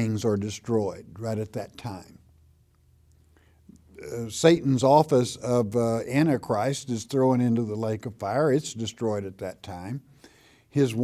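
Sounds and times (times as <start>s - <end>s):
man speaking: 0.0s - 2.2s, 3.9s - 10.1s, 10.7s - 11.0s
low room hum: 0.0s - 11.0s
soft intake of breath: 3.3s - 3.7s, 10.1s - 10.8s.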